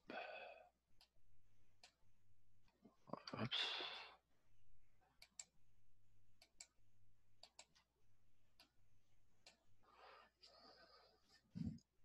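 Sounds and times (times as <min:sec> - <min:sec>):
faint sharp clicks: 0:07.4 - 0:07.9.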